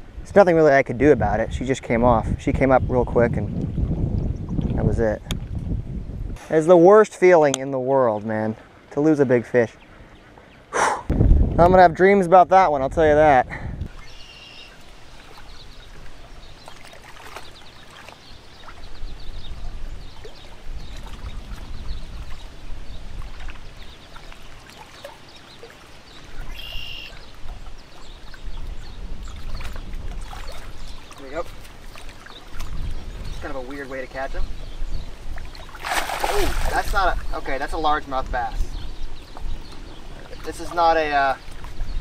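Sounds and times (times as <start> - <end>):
gusty wind buffeting microphone: 0.0 - 6.5, 11.0 - 14.1, 18.8 - 24.1, 27.2 - 31.0, 31.8 - 42.0
small waves lapping on rocks: 35.4 - 37.4.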